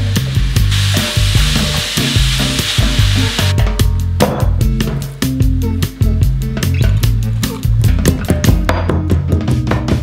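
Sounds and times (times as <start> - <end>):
meat sizzling in a frying pan: 0.0 - 3.5
background music with bass: 0.0 - 10.0.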